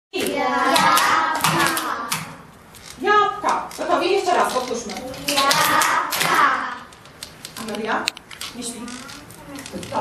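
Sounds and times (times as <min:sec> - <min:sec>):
young children's voices: 0:00.2 - 0:02.5, 0:04.9 - 0:06.9, 0:08.6 - 0:10.0.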